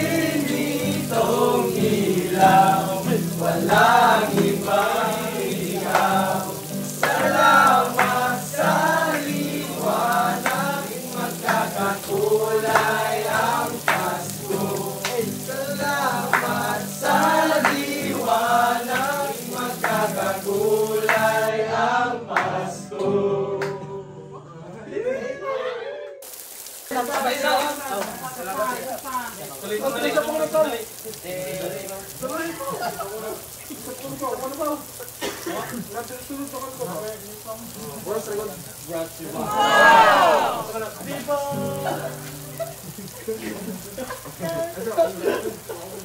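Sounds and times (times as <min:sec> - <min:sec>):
rain hiss: 0:00.0 - 0:23.3, 0:26.2 - 0:46.0
group of men singing: 0:00.0 - 0:24.6, 0:29.8 - 0:32.3, 0:39.4 - 0:42.4.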